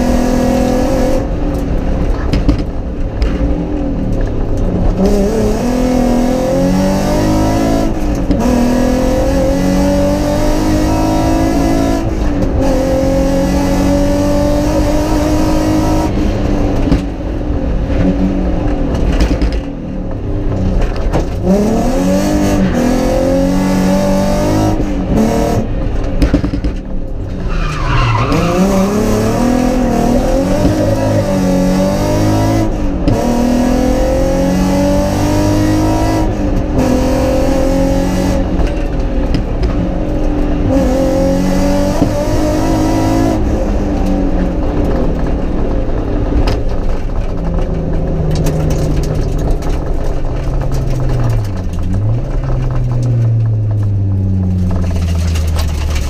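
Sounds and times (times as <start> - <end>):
rally car engine revving: 0.0 - 56.0.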